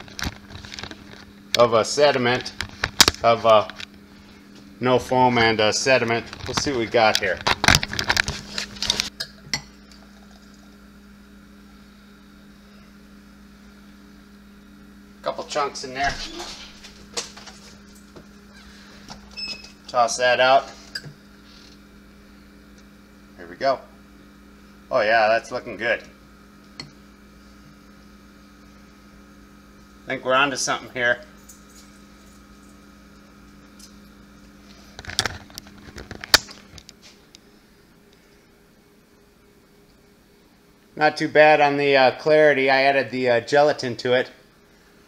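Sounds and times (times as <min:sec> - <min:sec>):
low electrical hum: 0:00.0 - 0:45.0.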